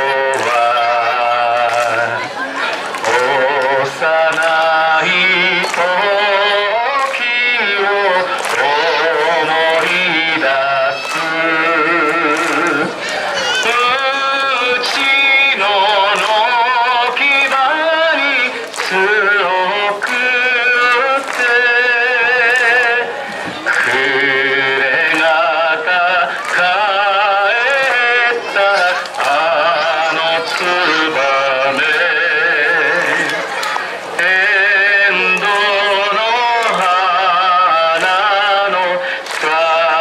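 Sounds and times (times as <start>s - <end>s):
man singing into a microphone: 0.0s - 40.0s.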